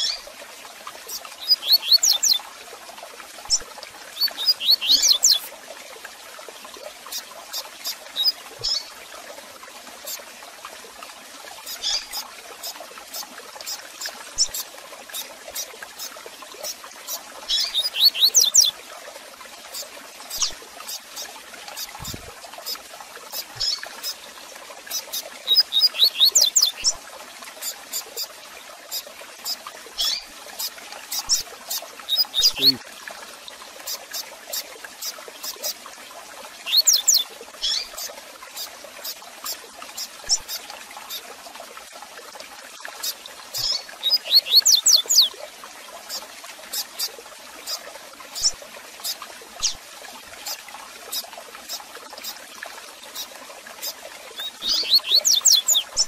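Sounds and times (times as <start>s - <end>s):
bird chirps: 1.4s - 2.4s, 4.2s - 5.4s, 17.5s - 18.7s, 25.5s - 26.9s, 32.1s - 32.8s, 43.6s - 45.3s, 54.4s - 56.0s
bird singing: 1.4s - 2.4s, 4.2s - 5.4s, 17.5s - 18.7s, 25.5s - 26.9s, 32.1s - 32.8s, 36.7s - 37.8s, 43.6s - 45.3s, 54.4s - 56.0s.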